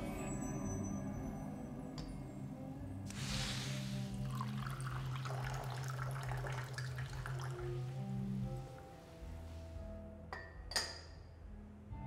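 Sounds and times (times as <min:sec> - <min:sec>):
tea pouring into cup: 0:03.1 - 0:08.7.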